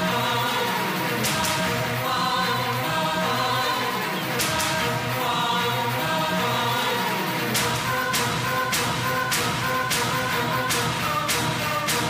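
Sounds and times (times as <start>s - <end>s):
choir-like voices: 0.0s - 12.0s
steady held notes: 0.0s - 12.0s.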